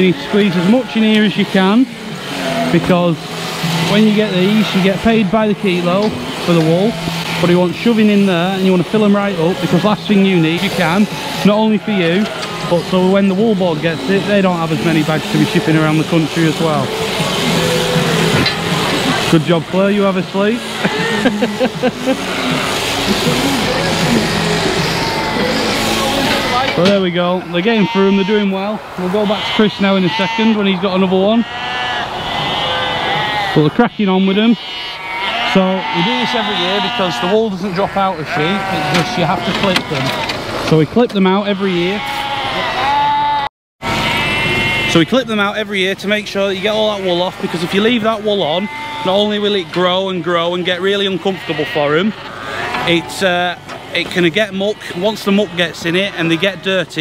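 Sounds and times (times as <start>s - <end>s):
sheep bleating: 0.0s - 40.4s, 41.3s - 45.0s, 47.0s - 56.8s.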